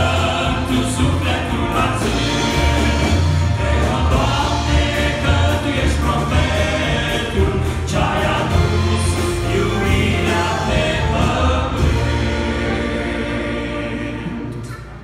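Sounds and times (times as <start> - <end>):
male vocal group singing: 0.0 - 14.9
bass guitar: 0.0 - 15.0
keyboard: 0.0 - 15.0
piano: 0.0 - 15.0.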